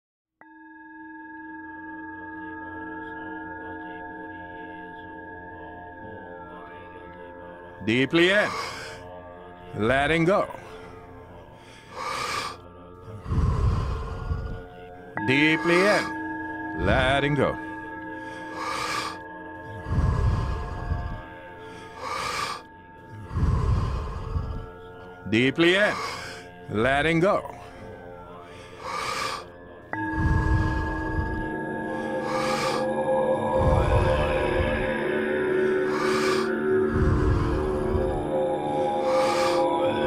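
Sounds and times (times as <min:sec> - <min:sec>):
singing bowl ringing: 0:00.4 - 0:07.2, 0:14.8 - 0:22.0, 0:29.5 - 0:40.0
ambient music with sustained tones: 0:00.4 - 0:40.0
person breathing audibly: 0:08.2 - 0:09.1, 0:10.3 - 0:40.0
breath blowing against microphone: 0:28.7 - 0:34.9.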